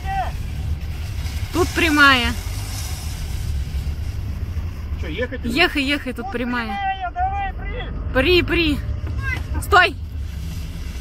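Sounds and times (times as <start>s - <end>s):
even hiss: 0.0s - 5.3s
car engine low rumble: 0.0s - 11.0s.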